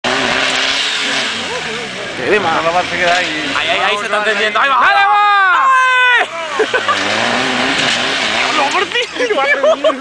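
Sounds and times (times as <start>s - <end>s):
engine revving hard: 0.0s - 4.3s, 6.2s - 9.3s
person shouting: 4.7s - 6.6s.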